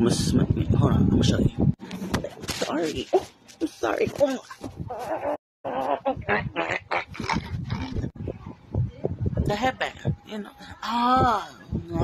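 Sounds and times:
woman grunting and mouth noises: 4.9 - 8.2.

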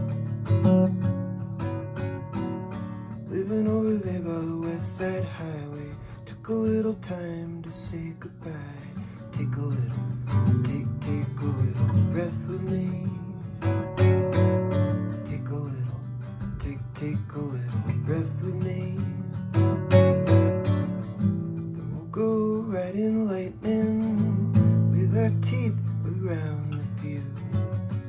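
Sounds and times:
classical guitar strummed and picked: 0.0 - 28.0
man singing: 3.1 - 28.0.

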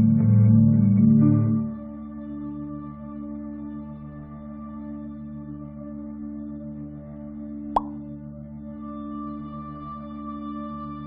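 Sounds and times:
ambient music with sustained tones: 0.0 - 11.0
upward sweeping pop effect: 7.8 - 8.0.

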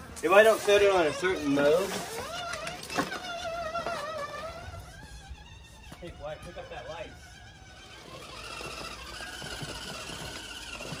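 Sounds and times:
electric motor whine: 0.0 - 11.0.

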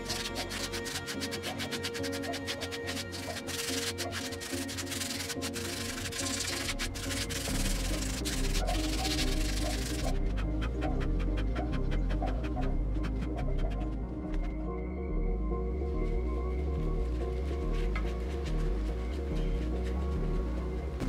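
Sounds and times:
sandpaper rubbing on pot: 0.0 - 14.5, 17.0 - 21.0
background music: 0.0 - 21.0.

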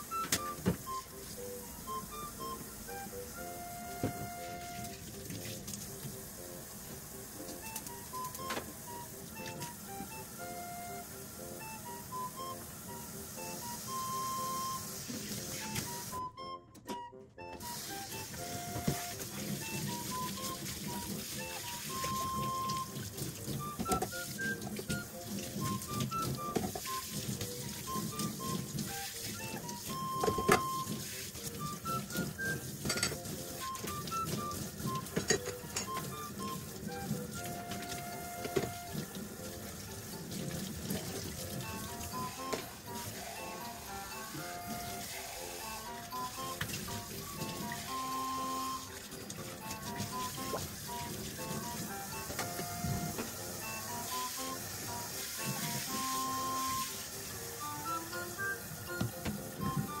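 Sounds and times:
running tap water: 0.0 - 16.4, 17.4 - 60.0
background music melody: 0.0 - 60.0
dishes clinking: 32.8 - 33.2, 35.2 - 36.0.

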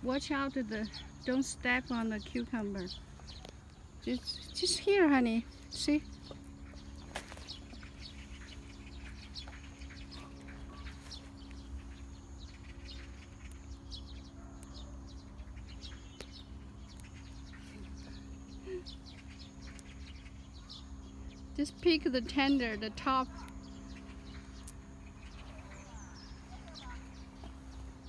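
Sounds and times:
faint bird chirps: 0.0 - 28.0
steady low hum: 0.0 - 28.0.

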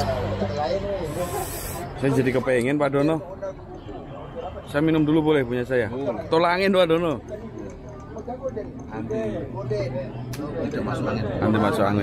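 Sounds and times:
short hiss: 1.1 - 1.9.

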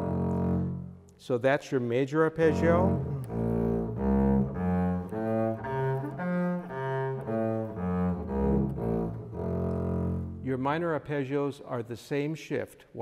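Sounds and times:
bowed double bass arpeggio: 0.0 - 0.9, 2.4 - 10.6.

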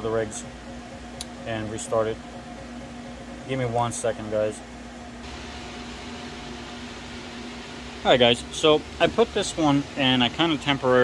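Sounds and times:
cooling fans rushing air: 0.0 - 11.0
steady low hum: 0.0 - 11.0.

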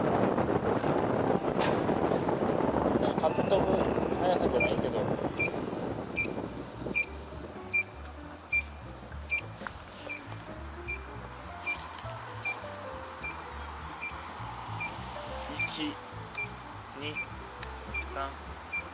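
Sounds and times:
short high beeps: 3.3 - 5.6
music with pulsing bass: 4.6 - 18.9.

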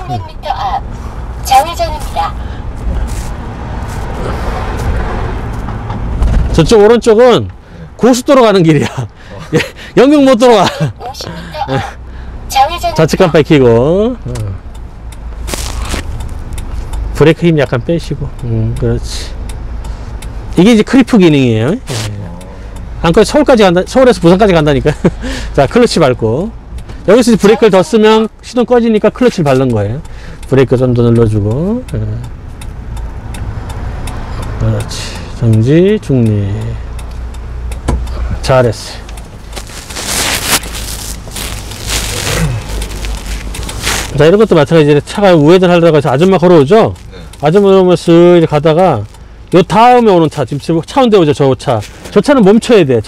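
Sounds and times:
engine and road rumble: 0.0 - 53.0
rustling noise: 2.8 - 6.5, 15.4 - 16.5, 39.3 - 44.5.

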